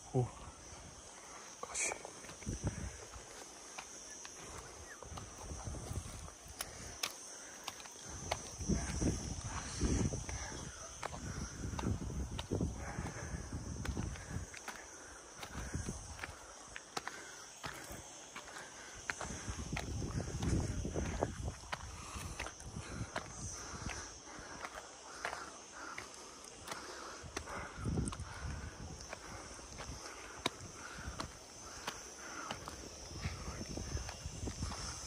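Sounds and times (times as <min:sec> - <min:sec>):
footsteps on stony dirt trail: 0:00.6 - 0:35.0.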